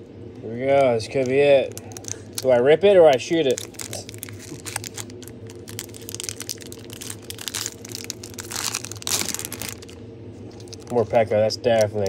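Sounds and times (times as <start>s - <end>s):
foil wrapper crinkling: 0.7s - 12.0s.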